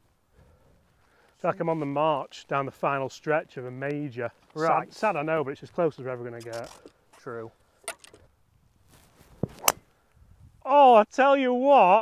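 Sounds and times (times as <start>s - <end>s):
golf club striking ball: 9.5s - 9.8s.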